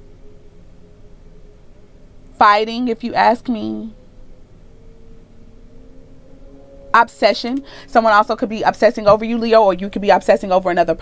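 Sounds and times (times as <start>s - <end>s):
faint background music: 0.0s - 11.0s
woman speaking: 2.4s - 4.0s, 7.0s - 11.0s.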